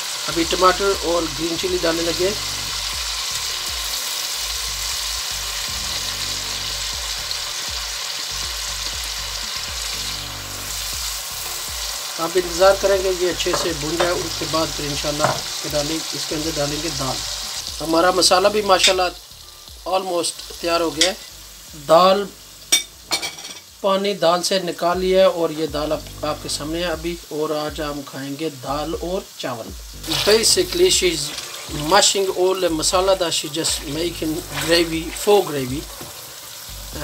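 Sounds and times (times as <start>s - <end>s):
food sizzling in a pot: 0.0s - 37.0s
person talking: 0.3s - 2.5s, 12.2s - 19.2s, 19.9s - 22.4s, 23.8s - 35.9s.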